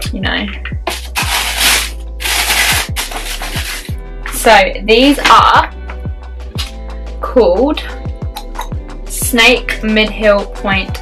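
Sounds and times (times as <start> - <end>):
background music with steady beat: 0.0 - 11.0
packaging rustling: 0.9 - 4.0.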